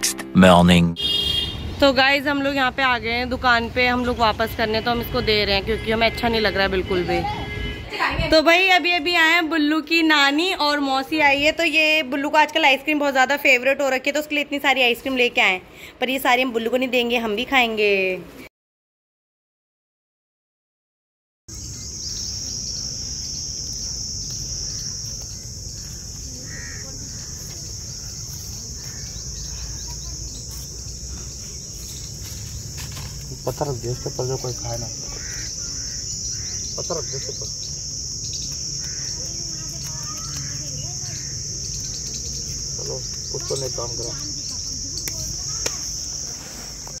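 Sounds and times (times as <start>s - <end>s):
insect chorus: 21.5s - 47.0s.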